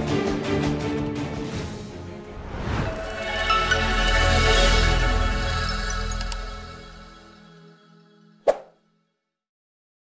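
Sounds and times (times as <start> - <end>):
background music: 0.0 - 9.2.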